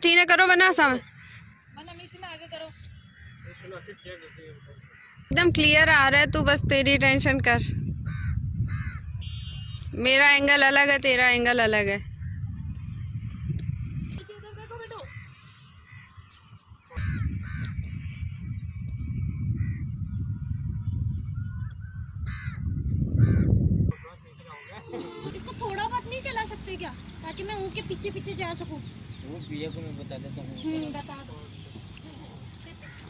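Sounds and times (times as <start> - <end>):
bird cawing: 1.0 - 5.3, 8.1 - 9.5, 14.5 - 18.0, 22.2 - 26.4, 32.7 - 33.0
wind rumble on microphone: 5.2 - 15.2, 16.5 - 24.0.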